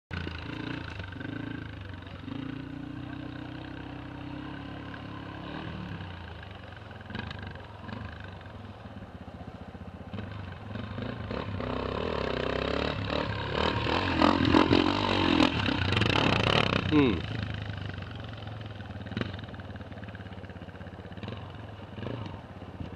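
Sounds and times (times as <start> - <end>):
dirt bike engine revving: 0.1 - 6.4, 10.1 - 18.4
dirt bike engines running: 0.1 - 22.9.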